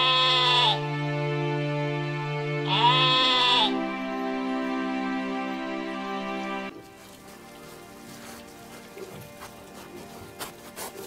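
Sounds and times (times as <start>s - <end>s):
sheep bleating: 0.0s - 0.9s, 2.6s - 3.8s
background music: 0.0s - 11.0s.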